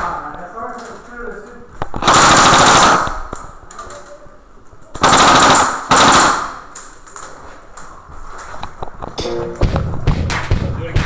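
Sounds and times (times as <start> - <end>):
airsoft rifle firing full auto: 2.0 - 3.2, 5.0 - 6.7.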